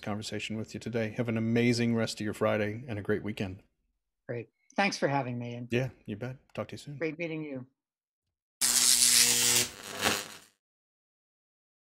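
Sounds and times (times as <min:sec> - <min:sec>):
loud electric buzz: 0:08.6 - 0:10.6.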